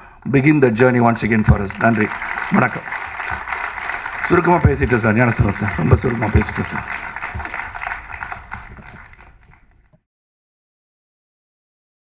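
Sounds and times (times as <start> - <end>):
audience applauding: 0.9 - 9.9.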